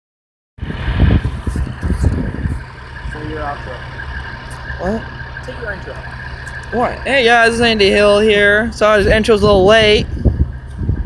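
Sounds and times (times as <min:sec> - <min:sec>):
diesel engine low rumble: 0:00.6 - 0:11.0.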